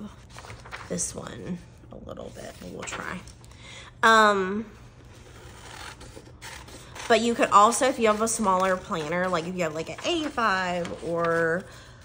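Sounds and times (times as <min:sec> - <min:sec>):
paper rustling: 0:00.0 - 0:01.6, 0:02.2 - 0:03.4, 0:05.0 - 0:12.0
scissors cutting paper: 0:05.2 - 0:11.7.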